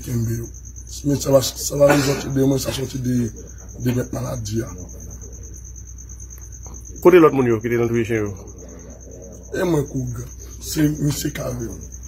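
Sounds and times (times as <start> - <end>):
man speaking: 0.0 - 5.4, 7.0 - 8.6, 9.5 - 12.0
high-pitched pulsing chirping: 0.0 - 12.0.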